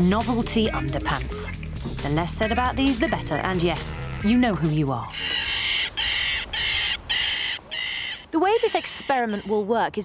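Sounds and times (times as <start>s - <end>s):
harsh rasping animal calls: 0.7s - 10.0s.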